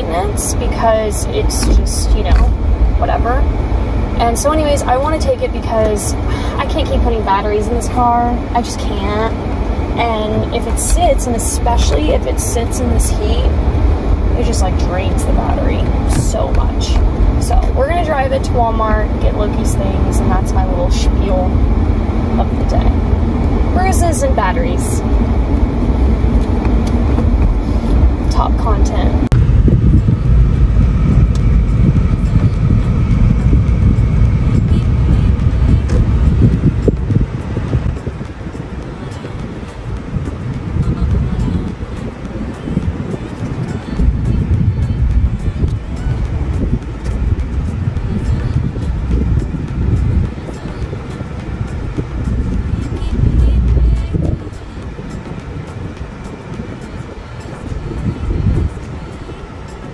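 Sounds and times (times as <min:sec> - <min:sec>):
music playing: 0:00.0 - 0:59.9
road and wind noise in car: 0:00.0 - 0:59.9.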